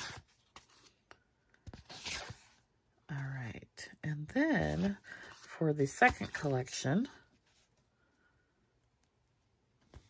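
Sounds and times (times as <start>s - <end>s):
woman's voice: 3.1s - 7.2s.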